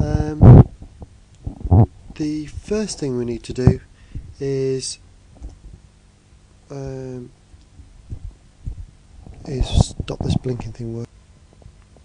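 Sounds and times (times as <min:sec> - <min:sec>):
man making hesitation sounds: 0:00.0 - 0:00.8, 0:01.4 - 0:04.9, 0:09.4 - 0:11.0.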